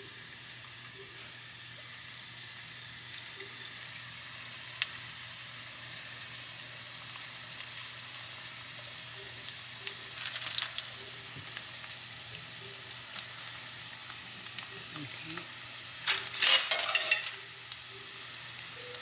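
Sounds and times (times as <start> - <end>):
egg rolls sizzling in oil: 0.0 - 19.0.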